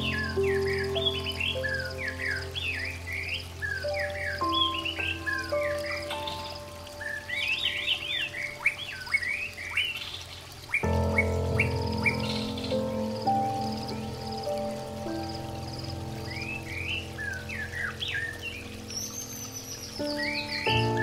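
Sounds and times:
soft sustained pad music: 0:00.0 - 0:21.0
songbirds chirping: 0:00.0 - 0:21.0.

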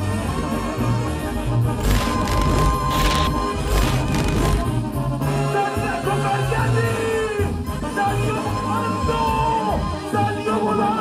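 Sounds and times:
brass band playing: 0:01.3 - 0:05.4.

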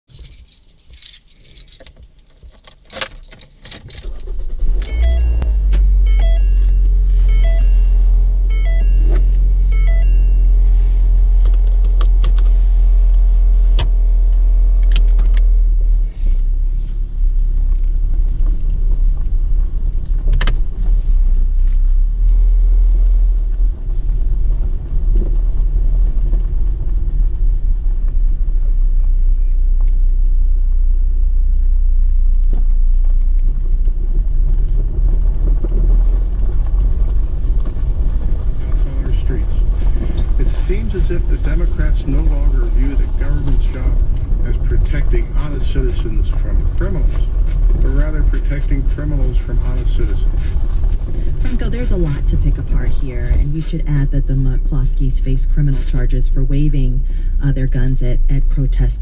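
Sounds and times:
loud deep rumble: 0:04.0 - 0:59.0
short electronic chimes: 0:04.8 - 0:10.6.

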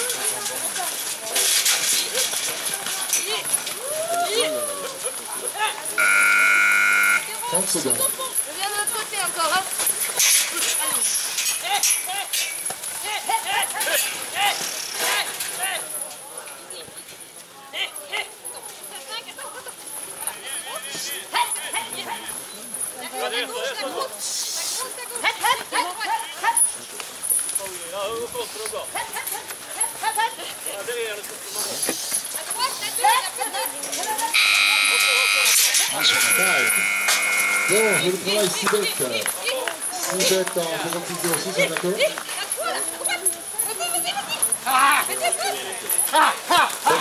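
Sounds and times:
distant people talking and calling: 0:00.0 - 0:47.0.

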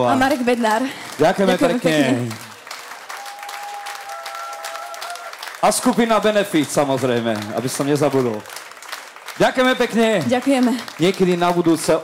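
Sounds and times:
audience applauding: 0:00.0 - 0:12.0
man's voice: 0:01.2 - 0:02.4.

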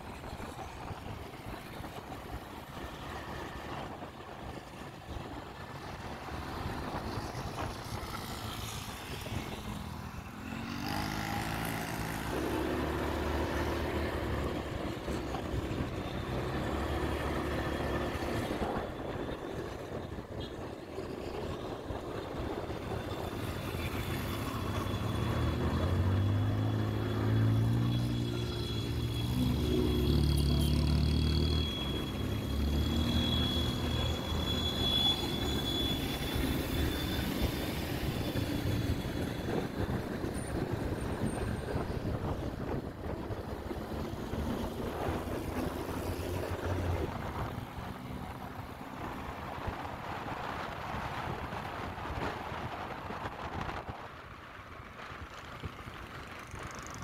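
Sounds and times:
road and wind noise: 0:00.0 - 0:57.0
motorcycle engine revving: 0:08.2 - 0:14.8.

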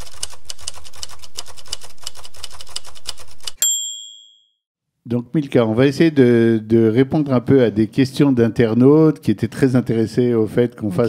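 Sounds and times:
typewriter keystrokes: 0:00.0 - 0:03.6.

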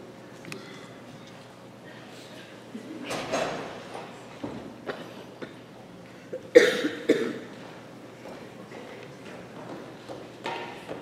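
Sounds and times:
person coughing: 0:06.3 - 0:07.5.

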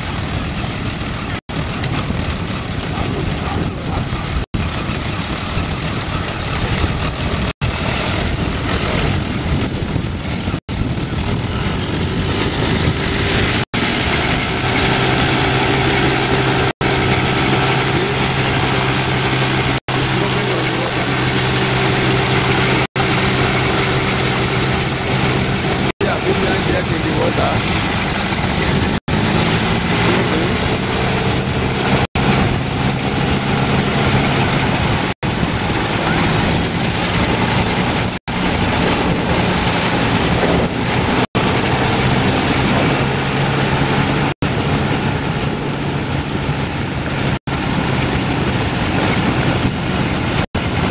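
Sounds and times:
boat engine drone: 0:00.0 - 0:50.9
water rushing: 0:00.0 - 0:50.9.

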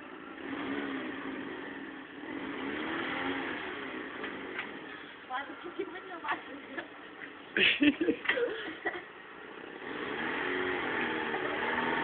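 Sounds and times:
car engine revving: 0:00.0 - 0:05.2, 0:09.4 - 0:12.0.

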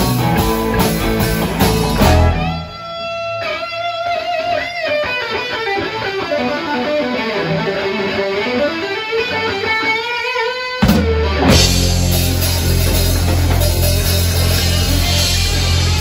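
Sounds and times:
blues-rock band playing: 0:00.0 - 0:16.0
electric guitar solo: 0:00.0 - 0:16.0.

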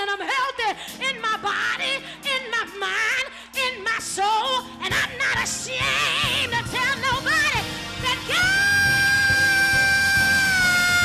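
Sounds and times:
faint band accompaniment: 0:00.0 - 0:11.0.

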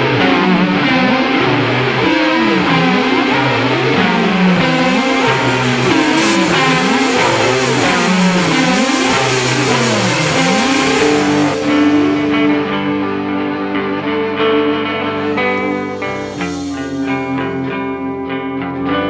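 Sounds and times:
band recording: 0:00.0 - 0:19.0
electric guitar sliding in pitch: 0:00.0 - 0:19.0.

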